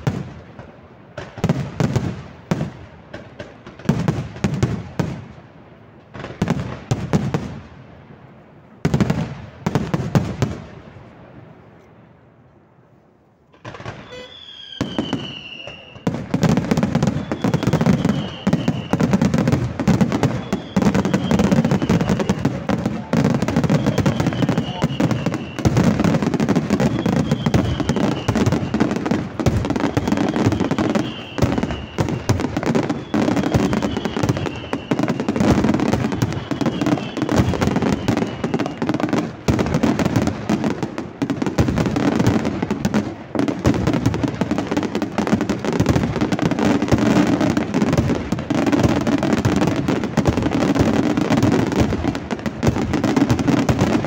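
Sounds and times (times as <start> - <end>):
fireworks bursting and crackling: 0.0 - 54.0
falling firework whistle: 13.5 - 40.6.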